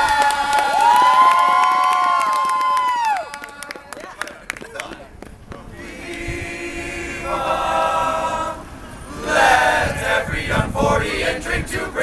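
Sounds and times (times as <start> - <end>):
male a cappella group singing: 5.6 - 12.0.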